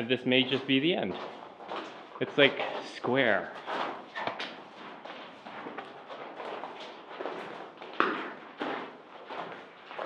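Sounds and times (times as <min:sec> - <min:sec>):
footsteps crunching on gravel: 0:00.0 - 0:10.0.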